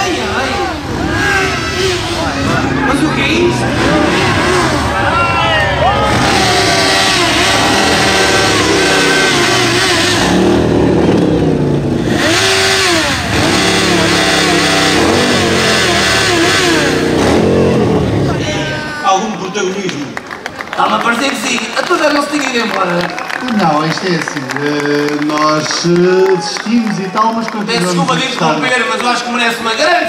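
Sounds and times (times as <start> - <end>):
crowd shouting: 0.0 - 10.5, 17.4 - 19.6
motorcycle engine running: 0.0 - 19.0.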